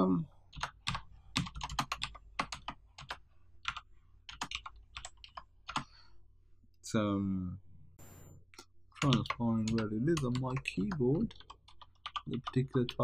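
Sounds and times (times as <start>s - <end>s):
computer keyboard typing: 0.5s - 5.9s, 9.0s - 13.0s.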